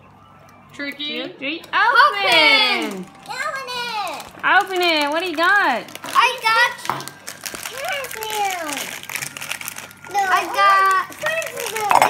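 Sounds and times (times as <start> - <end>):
foil wrappers crinkling: 2.3 - 12.0.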